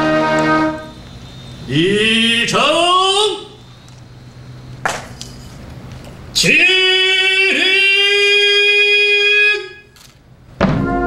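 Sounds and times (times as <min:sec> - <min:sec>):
brass with drum chord: 0:00.0 - 0:00.9, 0:10.6 - 0:11.0
long held note: 0:00.0 - 0:02.4, 0:10.8 - 0:11.0.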